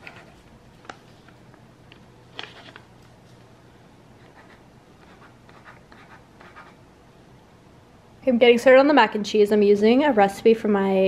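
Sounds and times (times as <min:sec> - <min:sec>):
low steady hum: 0:00.0 - 0:11.0
pen scratching on paper: 0:04.2 - 0:06.8.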